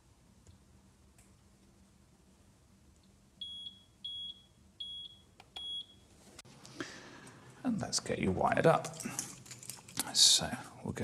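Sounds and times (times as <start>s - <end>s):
short high-pitched beeps: 3.4s - 6.0s.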